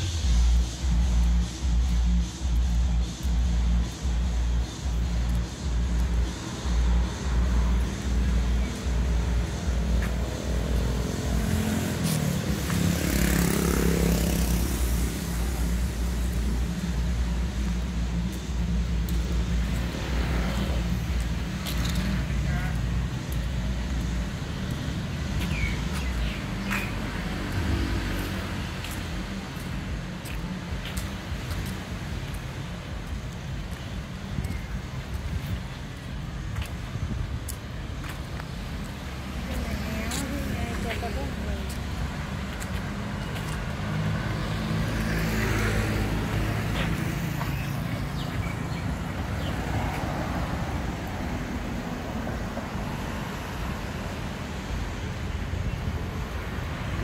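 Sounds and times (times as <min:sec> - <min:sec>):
music with bass beat: 0:00.0 - 0:51.0
vehicle passing: 0:03.2 - 0:32.8, 0:37.8 - 0:57.0.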